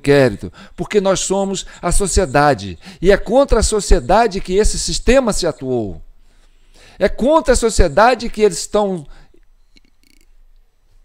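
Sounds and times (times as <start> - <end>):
faint breath: 2.8 - 3.0, 6.2 - 7.0, 9.1 - 9.4.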